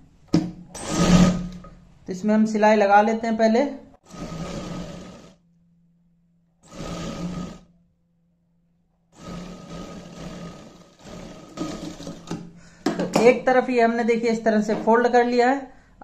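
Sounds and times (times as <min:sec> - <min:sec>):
sewing machine stitching: 0:00.8 - 0:01.6, 0:04.1 - 0:05.4, 0:06.6 - 0:07.7, 0:09.2 - 0:12.4.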